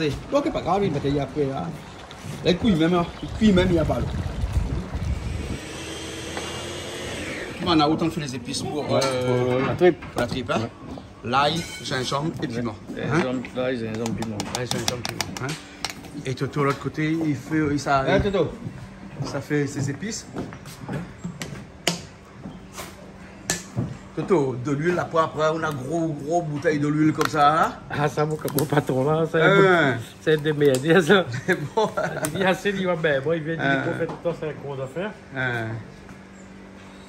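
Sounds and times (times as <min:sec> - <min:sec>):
wind buffeting microphone: 0:02.3 - 0:08.4.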